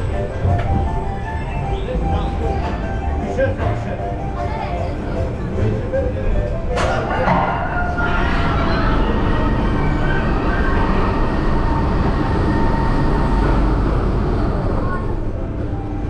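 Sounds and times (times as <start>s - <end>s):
ride lift mechanical rumble: 0.0s - 16.0s
high whine of lift machinery: 6.4s - 16.0s.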